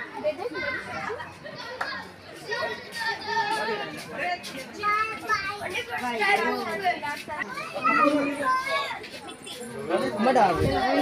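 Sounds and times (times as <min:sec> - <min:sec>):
overlapping voices talking: 0:00.0 - 0:11.0.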